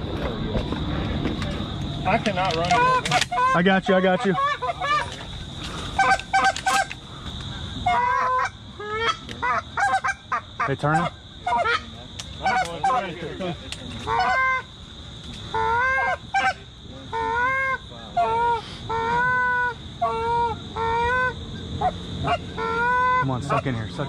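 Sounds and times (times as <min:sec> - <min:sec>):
geese honking: 0:02.1 - 0:13.2, 0:14.0 - 0:14.7, 0:15.5 - 0:24.0
choppy goose clucks: 0:02.1 - 0:14.7, 0:15.4 - 0:23.9.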